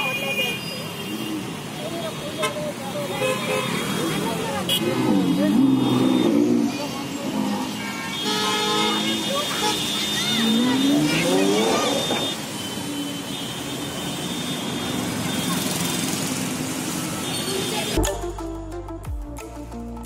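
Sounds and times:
car engines: 0.0s - 18.0s
crowd voices: 1.8s - 12.4s
car horns honking: 8.1s - 15.6s.

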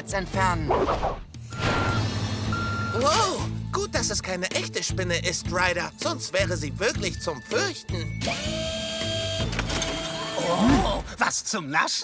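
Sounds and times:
background music: 0.0s - 12.0s
reversing alarm beeps: 1.5s - 3.1s.

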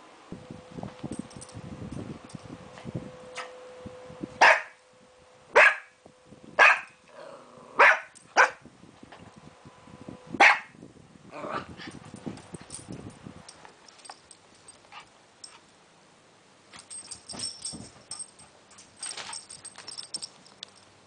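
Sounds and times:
puppy barking: 4.4s - 4.8s, 5.6s - 6.0s, 6.6s - 7.0s, 7.8s - 8.6s, 10.4s - 10.8s
faint jingling: 16.7s - 21.0s.

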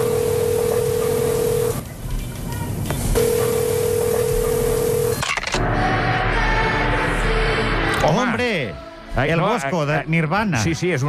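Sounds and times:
phone line hiss: 0.0s - 1.8s
telephone ringback beep: 0.0s - 1.8s, 3.2s - 5.4s.

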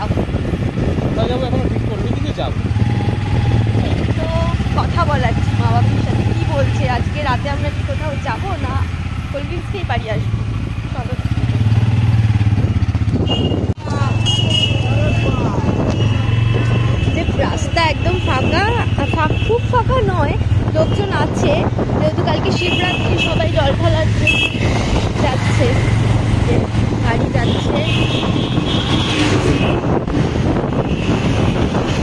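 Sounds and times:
motorcycle engine running: 0.0s - 32.0s
voices talking: 3.5s - 11.8s, 13.8s - 28.2s.

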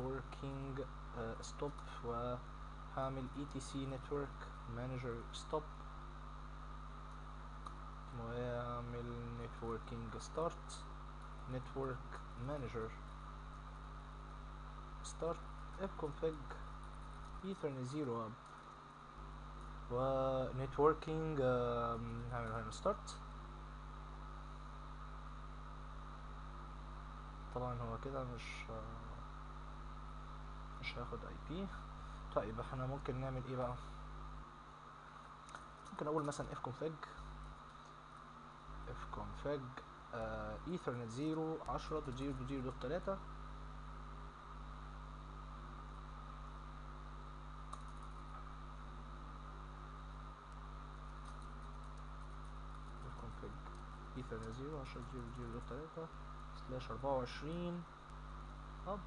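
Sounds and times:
low electrical hum: 0.0s - 59.0s
microphone hiss: 0.0s - 59.0s.

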